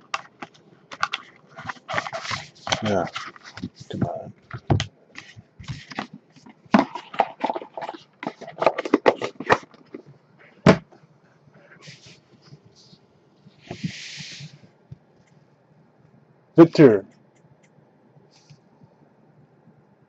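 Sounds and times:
handling cardboard box and packs: 0.0s - 10.1s.

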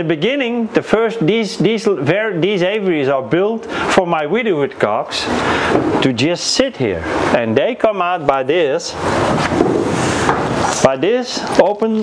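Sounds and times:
rushing noise on microphone: 5.0s - 12.0s.

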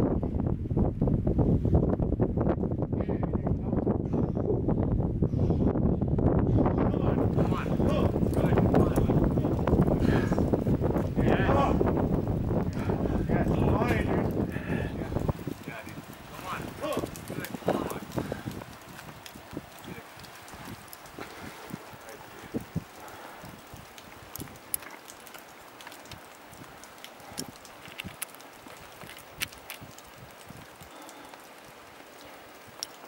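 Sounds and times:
faint outdoor hiss: 6.9s - 33.0s
person grunting and breathing: 10.0s - 10.5s.

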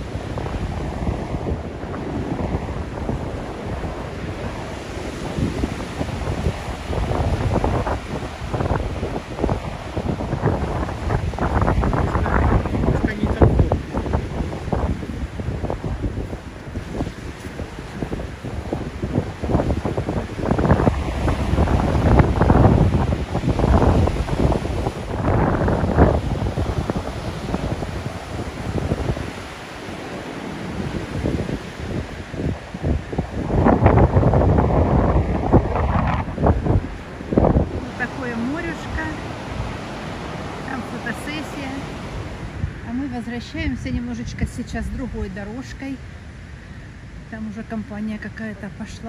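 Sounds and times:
surf breaking on beach: 0.0s - 49.0s
wind buffeting microphone: 0.0s - 49.0s.

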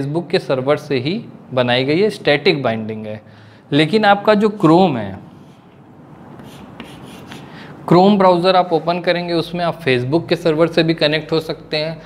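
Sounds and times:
chalk scratching on chalkboard: 5.3s - 5.8s, 6.4s - 7.6s.

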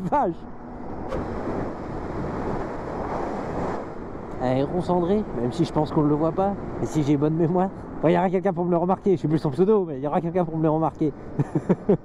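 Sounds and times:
wind rushing over microphone: 0.0s - 9.6s.

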